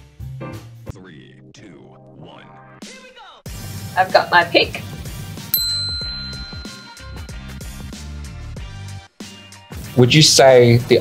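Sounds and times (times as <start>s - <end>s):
bell-like ding: 5.6s - 7.5s.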